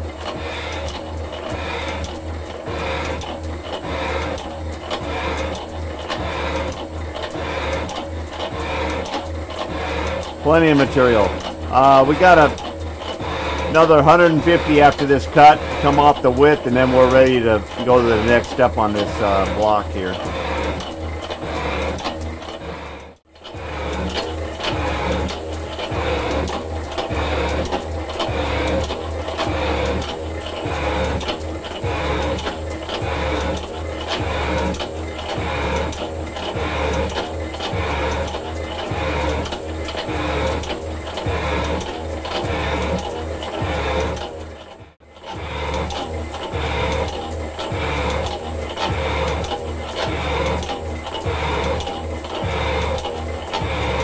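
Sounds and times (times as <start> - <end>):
metal shaper ram stroking: 0.0 - 54.0.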